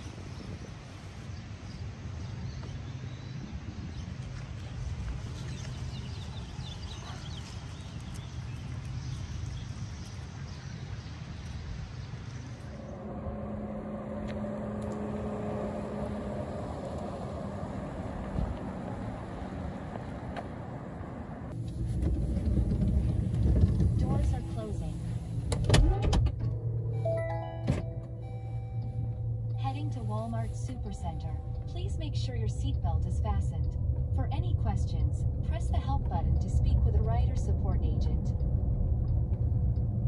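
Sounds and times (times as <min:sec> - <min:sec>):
steady outdoor noise: 0:00.0 - 0:40.0
car cabin low rumble: 0:12.3 - 0:40.0.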